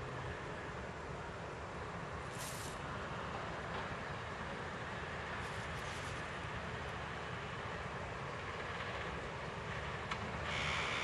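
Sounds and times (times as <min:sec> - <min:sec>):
distant city road traffic: 0:00.0 - 0:11.0.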